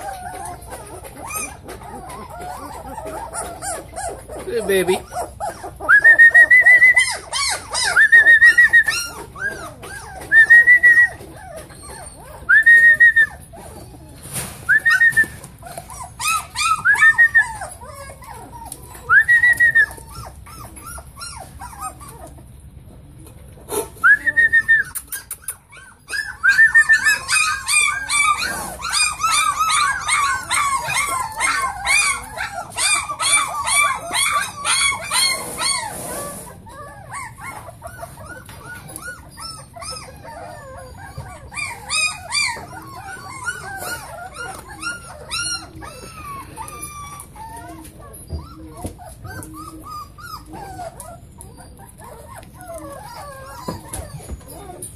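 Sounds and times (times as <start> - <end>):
puppy high whines: 0.0 - 22.5, 23.7 - 54.9
puppies whimpering and squealing: 0.0 - 54.9.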